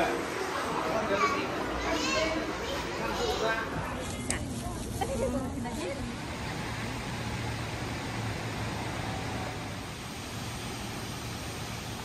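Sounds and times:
people talking: 0.0s - 6.3s.

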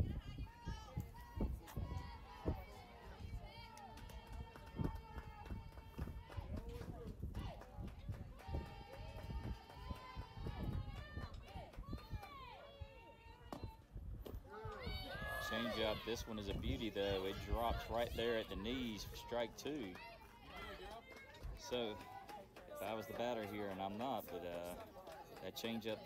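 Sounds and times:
people calling out and cheering: 0.0s - 26.0s.

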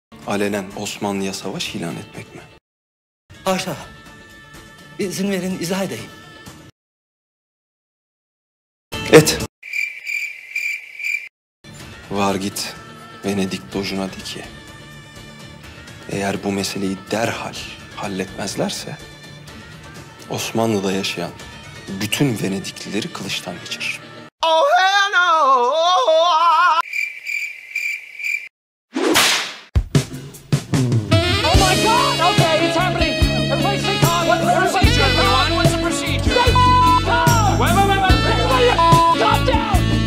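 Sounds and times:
crickets chirping: 9.6s - 11.3s, 26.8s - 28.5s.

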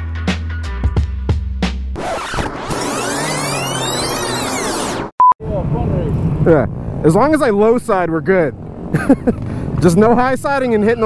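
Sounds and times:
rewind sound effect: 2.0s - 5.1s.

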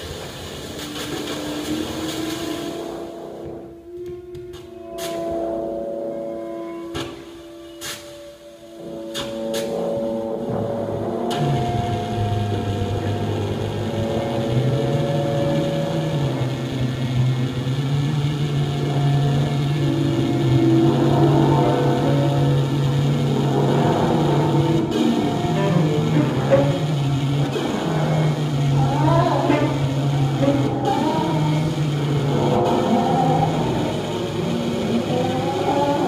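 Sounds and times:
low sustained drone: 0.0s - 36.0s
scattered clicks and knocks: 9.0s - 36.0s.

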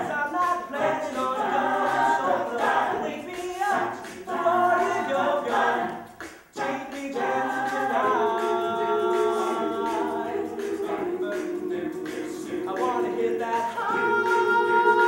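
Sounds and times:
a cappella group singing: 0.0s - 15.0s.

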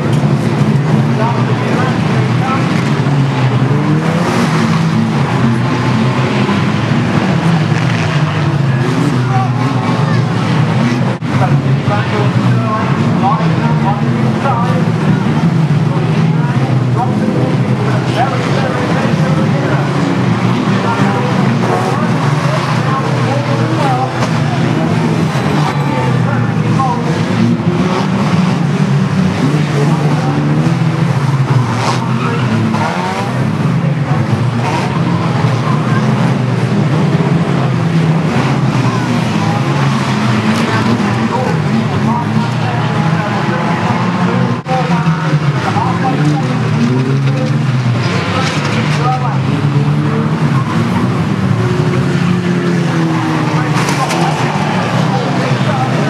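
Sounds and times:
racing car engines running hard: 0.0s - 56.0s
tyres skidding: 0.0s - 56.0s.

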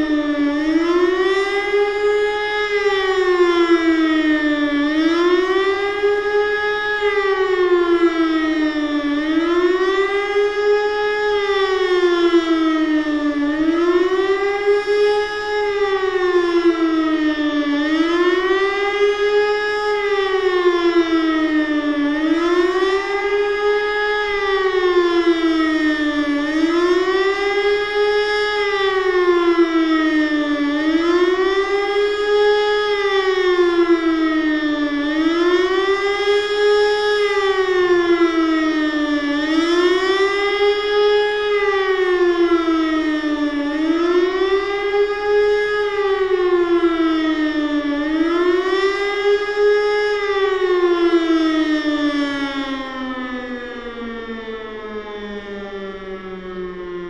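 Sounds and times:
motor siren wailing: 0.0s - 57.0s.

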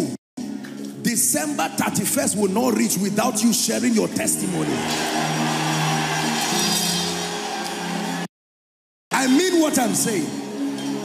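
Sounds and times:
soft music of sustained notes: 0.4s - 8.3s, 9.2s - 11.0s.

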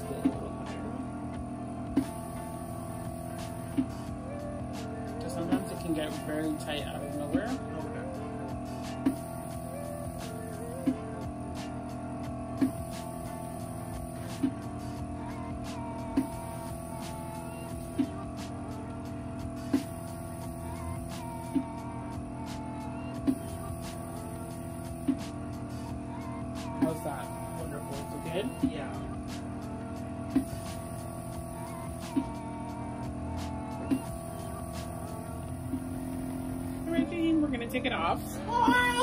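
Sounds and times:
cupping machine pump hum: 0.0s - 39.0s.

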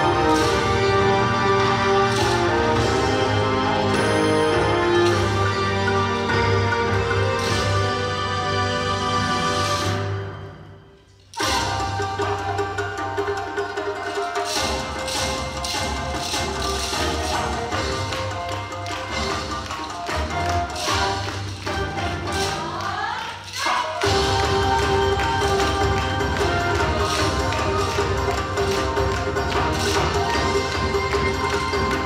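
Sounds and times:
wooden clappers clacking: 0.0s - 8.0s, 11.3s - 32.0s.

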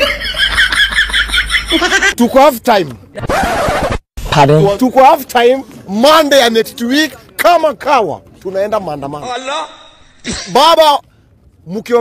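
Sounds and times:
high-pitched rapid laughter: 3.2s - 4.0s.

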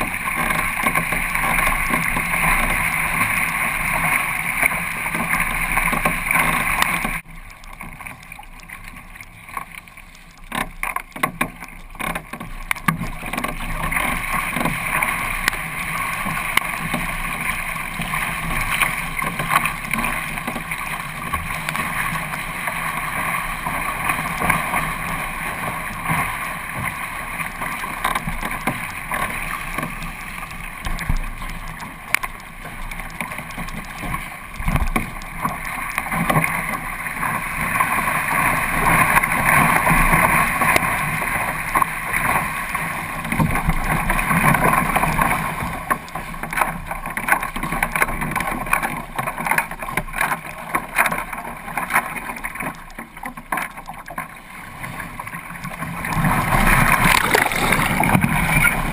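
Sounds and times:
water splashing against kayak hull: 0.0s - 58.9s.

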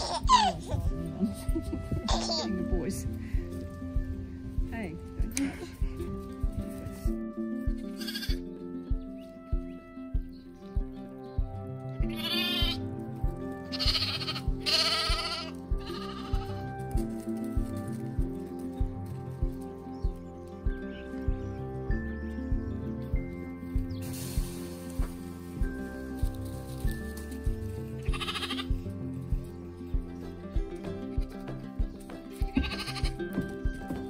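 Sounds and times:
lambs bleating: 0.0s - 1.1s, 7.8s - 8.5s, 12.0s - 12.8s, 13.6s - 17.2s, 27.8s - 28.9s, 32.4s - 33.7s
background music with steady beat: 0.0s - 34.0s.

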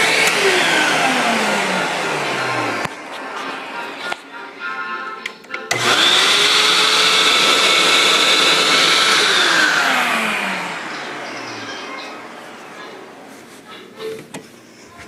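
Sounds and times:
vacuum cleaner motor whining: 0.0s - 3.8s, 5.7s - 13.2s.

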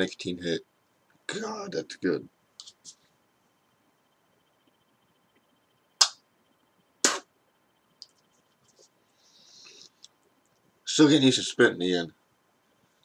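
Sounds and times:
sharp clicks: 5.3s - 6.2s.

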